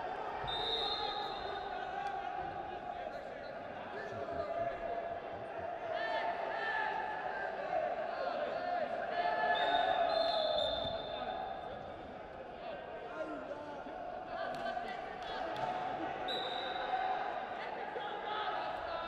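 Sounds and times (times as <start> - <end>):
voices in echoing hall: 0.0 - 19.0.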